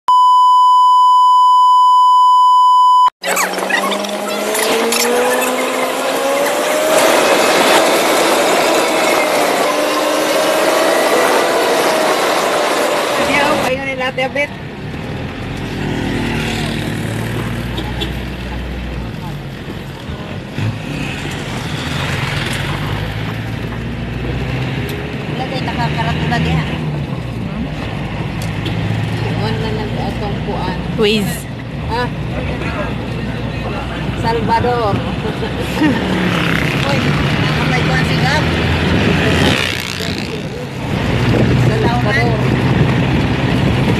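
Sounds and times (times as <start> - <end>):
vehicle engine rumble and road noise: 2.7 - 43.9.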